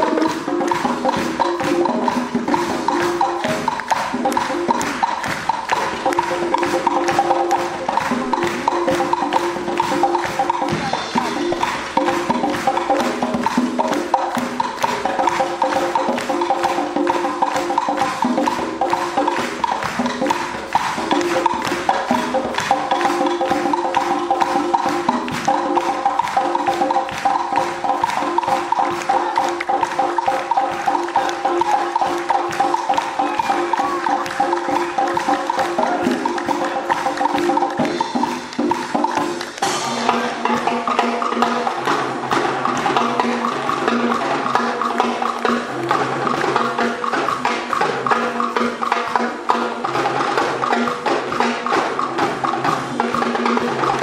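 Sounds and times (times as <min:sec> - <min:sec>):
hand drums: 0:00.0 - 0:54.0
wind band playing a mambo: 0:00.0 - 0:54.0
woodblock clicks: 0:00.0 - 0:54.0.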